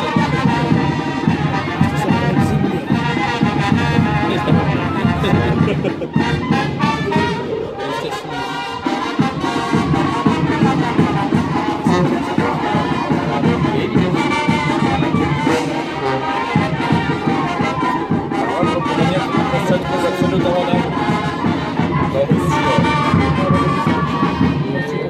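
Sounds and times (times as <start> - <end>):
brass band playing festive tune: 0.0 - 25.0.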